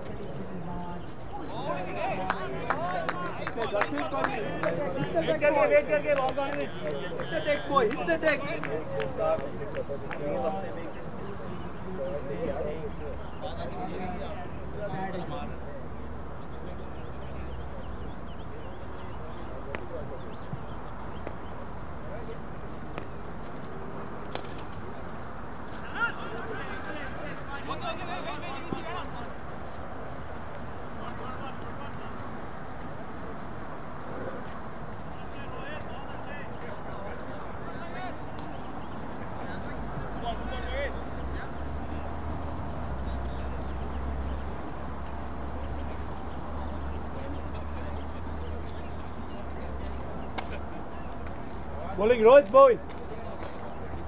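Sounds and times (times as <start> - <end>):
distant men talking and calling: 0.0 - 54.0.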